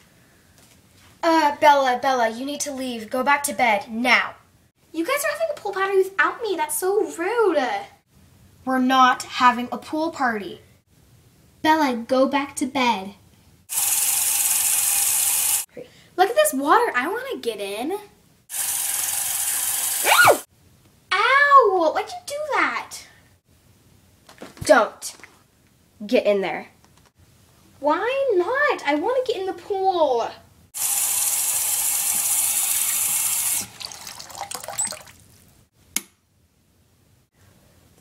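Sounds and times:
tap water running: 0:13.7 - 0:15.6, 0:18.5 - 0:20.0, 0:30.8 - 0:35.5
water trickling and splashing: 0:32.2 - 0:35.6.

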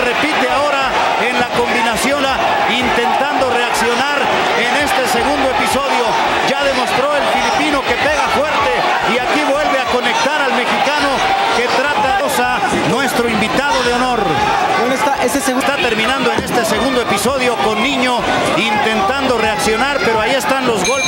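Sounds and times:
arena crowd noise: 0:00.0 - 0:21.0
men talking: 0:00.0 - 0:21.0.

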